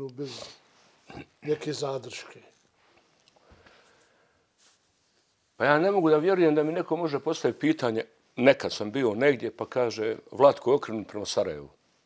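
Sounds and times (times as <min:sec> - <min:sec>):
man asking a question: 0:01.4 - 0:02.6.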